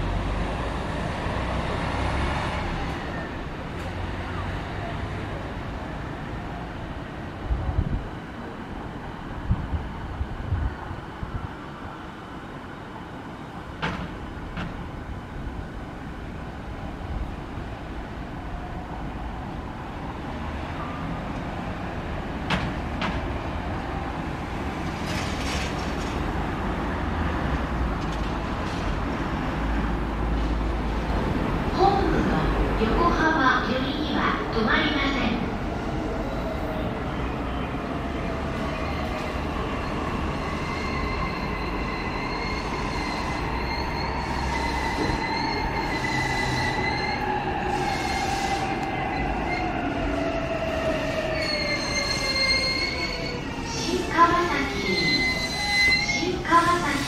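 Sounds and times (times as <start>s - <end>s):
electric train rumbling: 0.0s - 57.0s.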